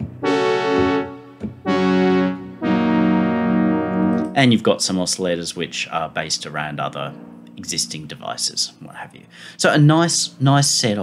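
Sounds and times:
synth brass tones: 0:00.0 - 0:04.6, 0:06.3 - 0:08.9.

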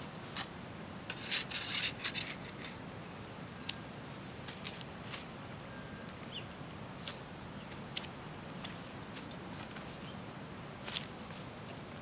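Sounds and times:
spatula scraping across plate: 0:01.1 - 0:02.8.

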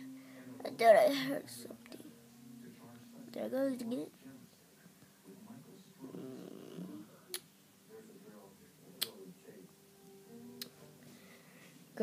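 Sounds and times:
faint talking: 0:00.0 - 0:09.7.

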